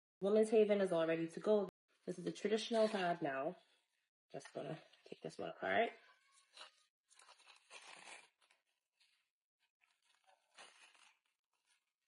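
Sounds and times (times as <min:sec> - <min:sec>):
faint tearing and rustling pad: 0:06.4 - 0:09.2, 0:09.8 - 0:12.0.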